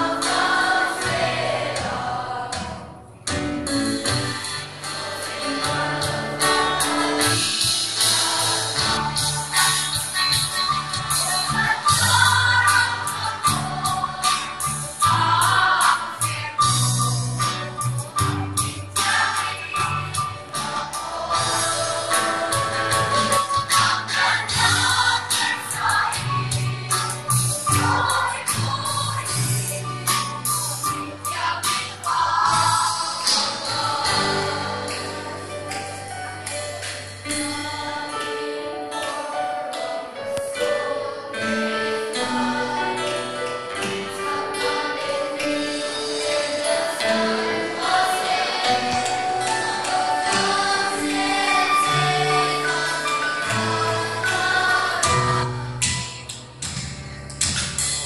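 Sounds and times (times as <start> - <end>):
youth choir singing gospel: 0.0 - 3.1, 4.3 - 55.8
drums: 0.0 - 39.2, 42.1 - 58.0
guitar: 0.0 - 58.0
keyboard: 0.0 - 58.0.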